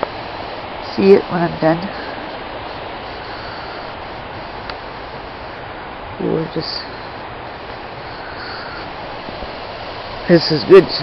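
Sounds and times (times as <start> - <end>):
river rushing: 0.0 - 11.0.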